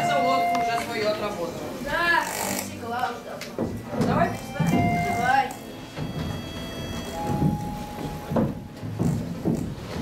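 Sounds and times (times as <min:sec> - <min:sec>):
faint music with held notes: 0:00.0 - 0:10.0
soft thumps: 0:06.0 - 0:10.0.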